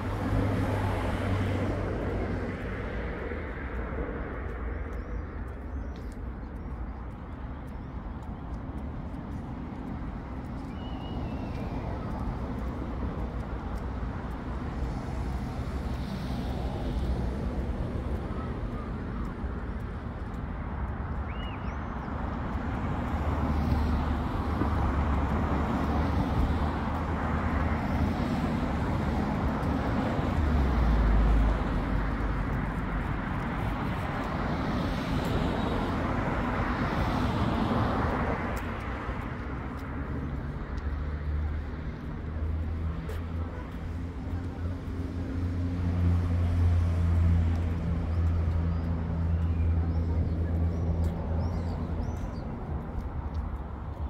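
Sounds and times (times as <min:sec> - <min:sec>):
deep traffic rumble: 0:00.0 - 0:54.0
faint bird chirps: 0:21.3 - 0:21.8.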